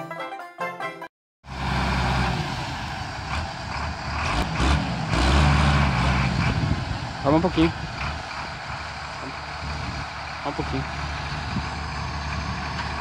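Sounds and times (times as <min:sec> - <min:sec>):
diesel tractor engines running: 0:01.5 - 0:13.0.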